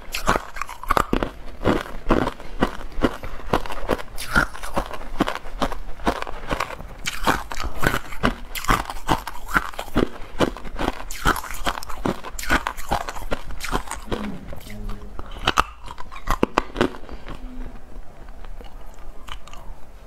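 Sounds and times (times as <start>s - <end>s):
ice crunched between teeth: 0.0s - 17.4s.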